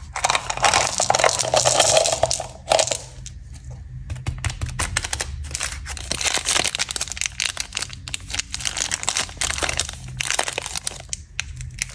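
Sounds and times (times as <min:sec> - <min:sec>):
plastic wrapper crinkling: 0:00.0 - 0:03.3, 0:04.6 - 0:11.9.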